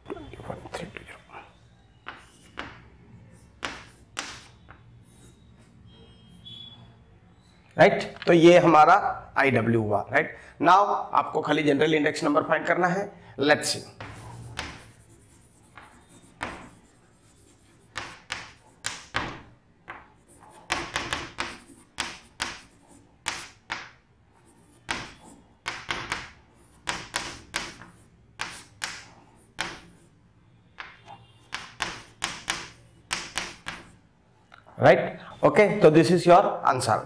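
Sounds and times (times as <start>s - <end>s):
chalk scratching on chalkboard: 2.1s - 5.8s, 14.0s - 19.2s, 20.0s - 30.2s, 31.0s - 34.0s.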